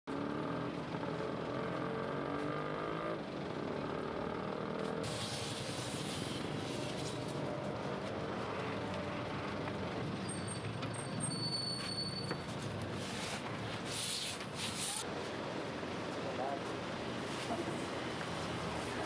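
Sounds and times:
vehicle engine running: 0.1s - 11.0s
hiss: 5.1s - 7.1s.

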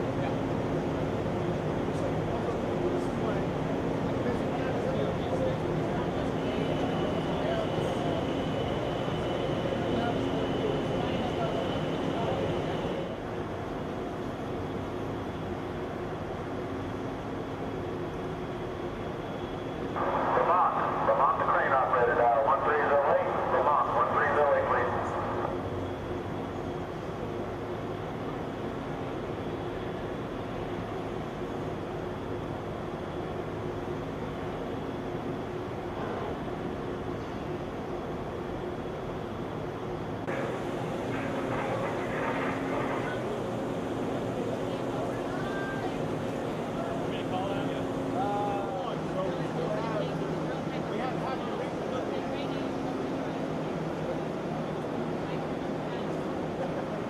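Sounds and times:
heavy machinery drone: 0.0s - 15.3s, 19.0s - 38.3s, 40.1s - 57.0s.

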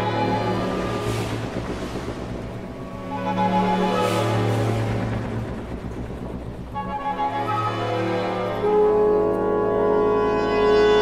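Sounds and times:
symphony orchestra playing: 0.0s - 5.9s, 6.6s - 11.0s
low orchestral rumble: 0.0s - 11.0s.

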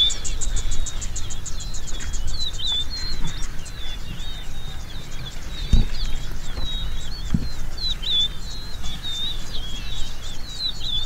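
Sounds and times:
birds singing: 0.0s - 11.0s.

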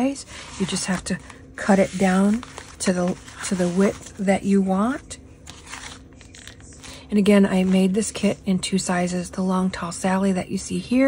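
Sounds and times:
paper rustling: 0.3s - 4.3s, 5.4s - 8.3s.

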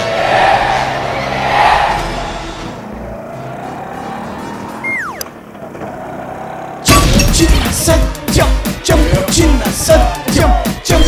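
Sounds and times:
rushing noise: 0.0s - 2.9s.

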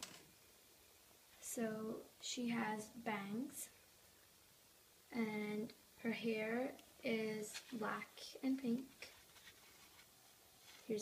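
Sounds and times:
girl speaking: 1.4s - 3.7s, 5.1s - 9.2s
plastic doll rustling in hand: 7.3s - 11.0s.

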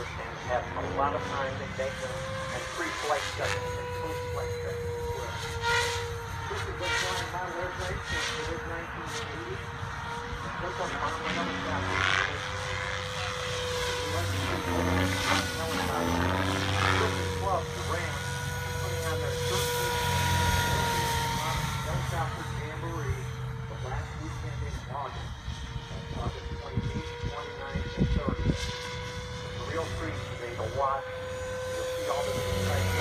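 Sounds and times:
rc helicopter motor and rotor whine: 0.0s - 33.0s.

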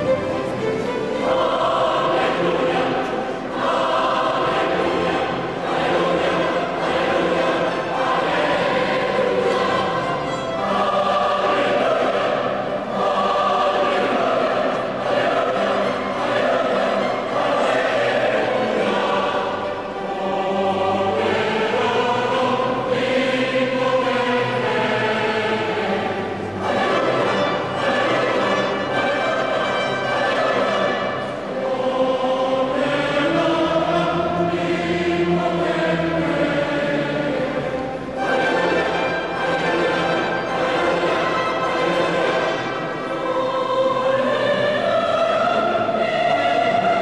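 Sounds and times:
choir singing: 0.0s - 47.0s
orchestra playing: 0.0s - 47.0s.

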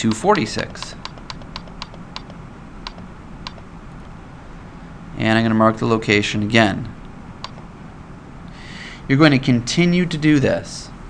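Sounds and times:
computer mouse clicking: 0.1s - 3.6s, 7.4s - 7.6s.

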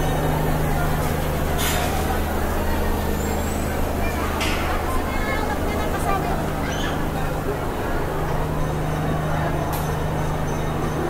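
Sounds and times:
babble of many voices: 0.0s - 11.0s.

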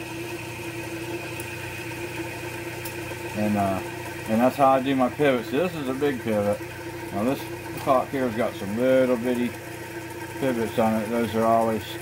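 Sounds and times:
polishing machine humming and whining: 0.0s - 12.0s.

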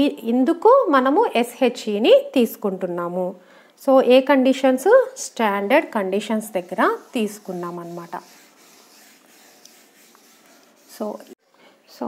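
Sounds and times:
eraser rubbing on whiteboard: 6.0s - 11.4s.

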